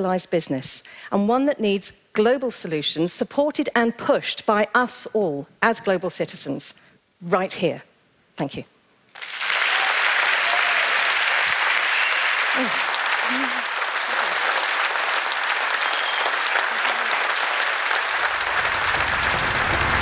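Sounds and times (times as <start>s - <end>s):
audience applauding: 9.2s - 20.0s
low music: 18.4s - 20.0s.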